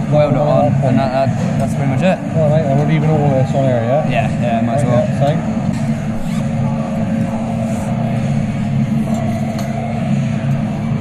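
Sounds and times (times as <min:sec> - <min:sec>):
faint steady hum: 0:00.0 - 0:11.0
low rumble of machinery: 0:00.0 - 0:11.0.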